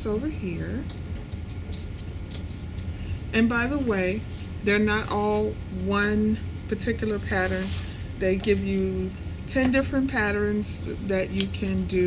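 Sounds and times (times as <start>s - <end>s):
low room hum: 0.0s - 12.0s
paper rustling: 0.9s - 3.0s.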